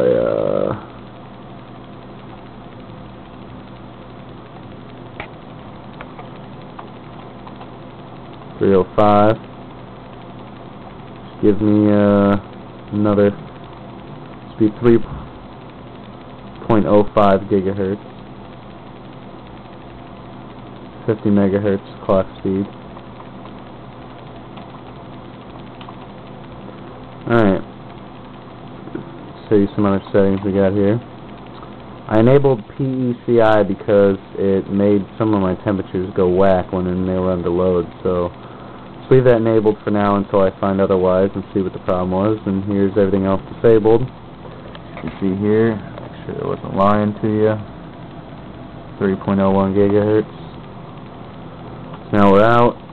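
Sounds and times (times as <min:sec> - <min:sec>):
computer cooling fans humming: 0:00.0 - 0:52.9.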